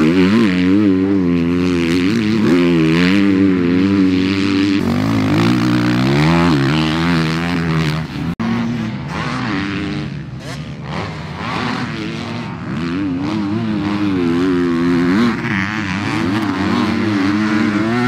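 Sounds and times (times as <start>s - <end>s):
dirt bike engines revving: 0.0s - 18.0s.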